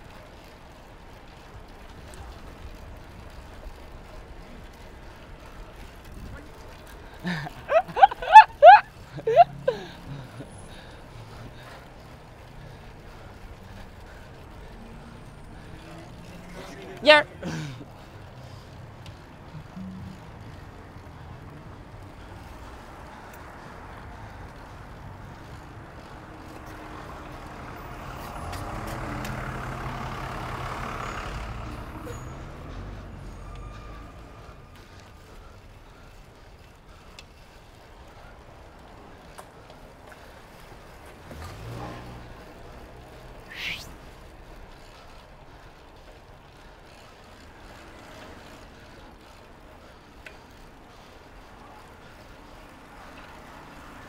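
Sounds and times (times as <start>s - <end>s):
motor vehicle passing: 0.0s - 54.0s
road and wind noise: 0.0s - 54.0s.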